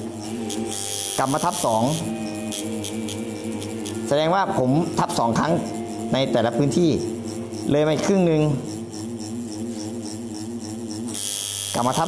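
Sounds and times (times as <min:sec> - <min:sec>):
tattoo machine buzzing: 0:00.0 - 0:12.0.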